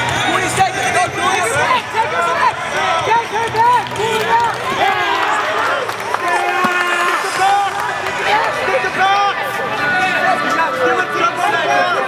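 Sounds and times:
crowd shouting and talking: 0.0s - 12.0s.

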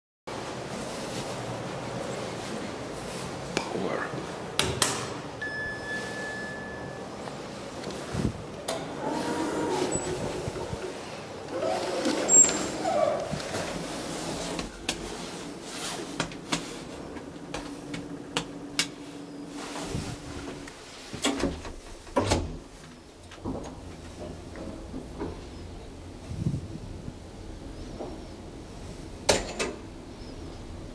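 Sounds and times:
elevator doors opening and closing: 4.4s - 18.8s, 19.4s - 26.2s, 27.6s - 30.9s
electronic beep: 5.4s - 7.1s.

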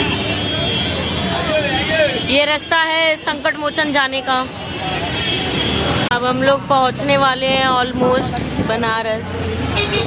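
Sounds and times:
busy street traffic: 0.0s - 10.0s
people talking: 0.9s - 5.1s, 6.0s - 9.6s.

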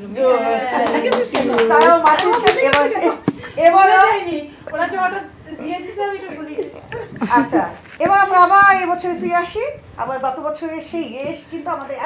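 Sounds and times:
women talking: 0.3s - 12.0s
people clapping: 0.6s - 3.4s.

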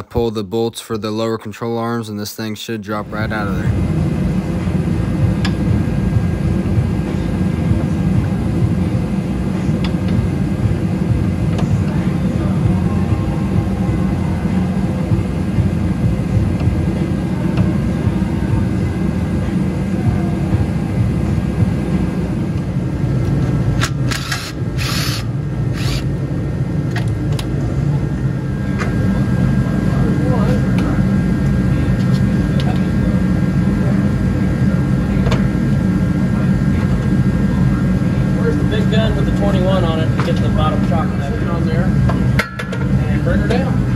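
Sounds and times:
steady low hum: 0.0s - 43.9s
cordless power tool bursts: 23.8s - 26.1s.

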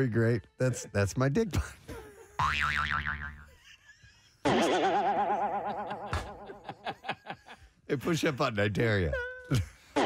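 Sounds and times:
cartoon boing with wobbling pitch: 2.4s - 3.5s.

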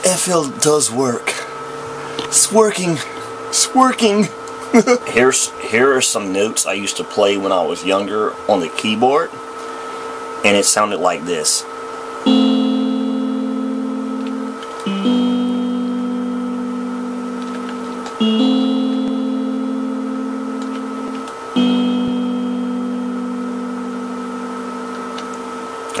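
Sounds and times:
faint steady hum: 0.0s - 26.0s
electronic keyboard long notes: 12.2s - 26.0s.

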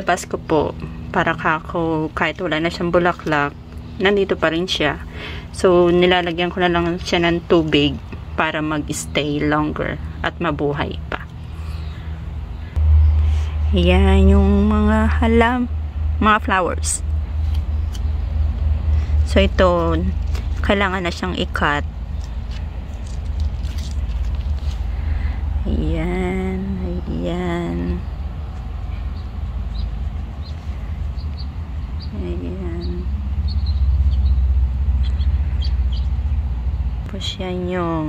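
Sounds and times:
low pulsing rumble: 0.0s - 38.0s.

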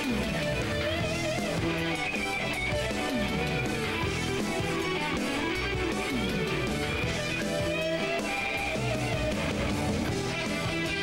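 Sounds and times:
electric guitar bending notes: 0.0s - 11.0s
rock band playing live: 0.0s - 11.0s.

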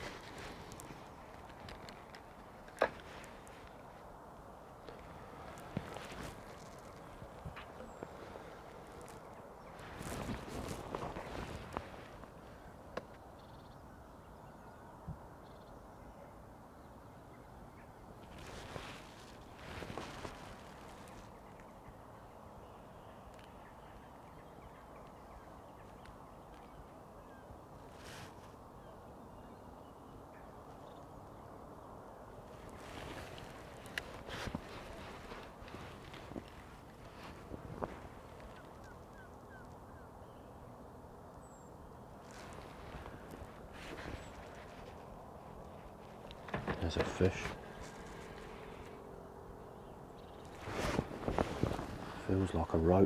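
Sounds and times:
rustling: 0.0s - 4.1s, 4.8s - 12.6s, 18.2s - 21.5s, 27.8s - 28.6s, 32.4s - 39.8s, 42.2s - 49.1s, 50.2s - 52.6s.

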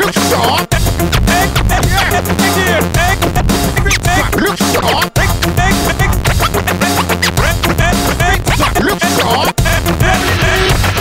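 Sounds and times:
hip hop beat and bass line: 0.0s - 11.0s
turntable scratching: 0.0s - 11.0s.

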